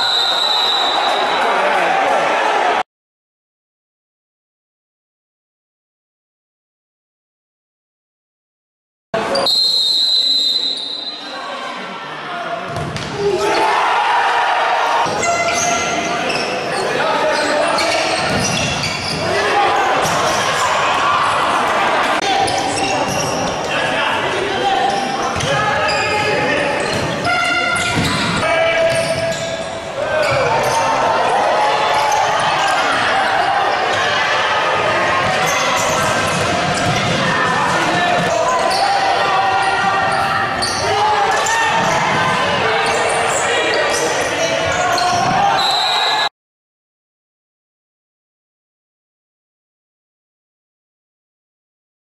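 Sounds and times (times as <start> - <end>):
players shouting: 13.0 - 46.3
spectators talking: 14.8 - 46.3.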